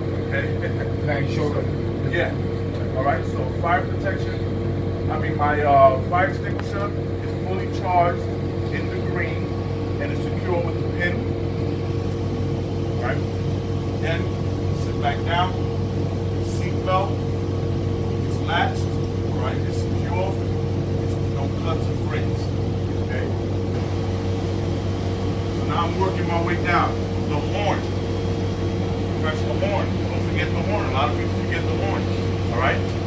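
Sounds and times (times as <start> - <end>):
bus engine idling: 0.0 - 33.0
people talking: 0.2 - 4.4, 5.1 - 11.3, 13.0 - 13.3, 14.0 - 15.6, 16.4 - 17.2, 18.2 - 23.4, 25.5 - 28.0, 29.1 - 33.0.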